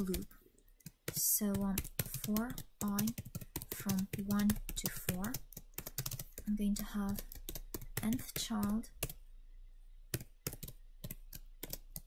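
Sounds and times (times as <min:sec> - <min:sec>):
typing on computer keyboard: 0:00.0 - 0:09.2, 0:10.1 - 0:12.0.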